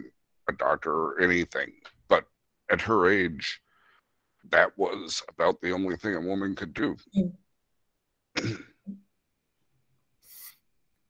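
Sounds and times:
person clearing throat: 8.4 - 8.8.

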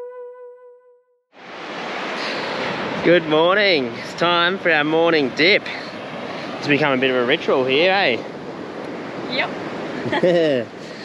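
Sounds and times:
held musical note: 0.0 - 1.2
beach surf and wind: 1.4 - 11.0.

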